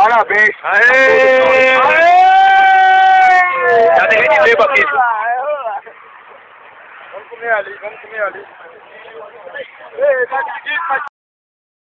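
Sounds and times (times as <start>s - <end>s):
man cheering shout: 0.7s - 5.0s.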